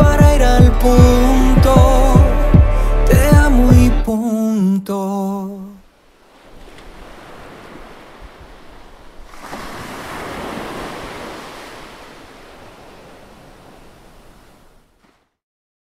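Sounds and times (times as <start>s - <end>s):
surf swell rushing: 6.0s - 15.1s.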